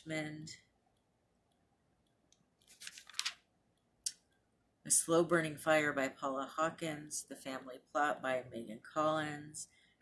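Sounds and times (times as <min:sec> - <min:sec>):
paper page rustling: 0:02.6 - 0:03.5.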